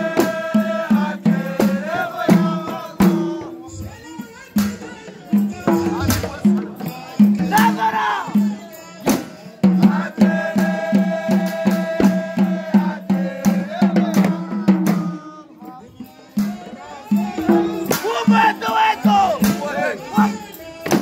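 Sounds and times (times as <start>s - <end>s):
frame drums beating: 0.0s - 21.0s
men singing in unison: 0.0s - 21.0s.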